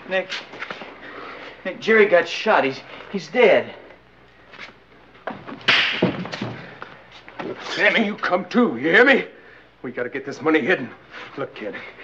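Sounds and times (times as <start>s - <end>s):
thumps of men scuffling: 5.2s - 7.6s.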